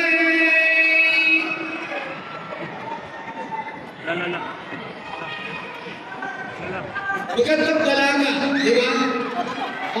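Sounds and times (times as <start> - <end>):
low background murmur: 0.0 - 10.0.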